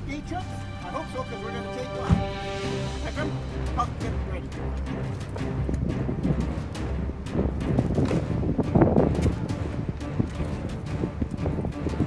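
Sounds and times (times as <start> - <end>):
wind buffeting microphone: 4.5 - 12.0.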